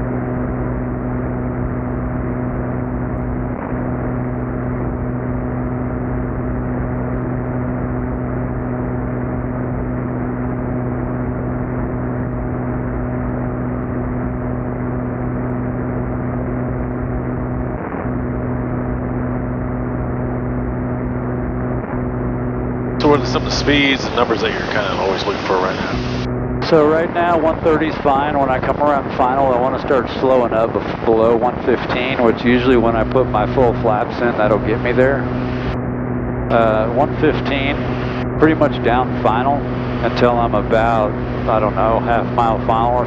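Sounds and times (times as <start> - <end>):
propeller plane engines droning: 0.0 - 43.0.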